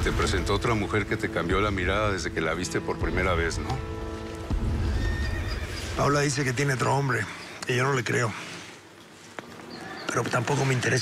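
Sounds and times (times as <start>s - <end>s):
background music chords: 0.0s - 6.1s.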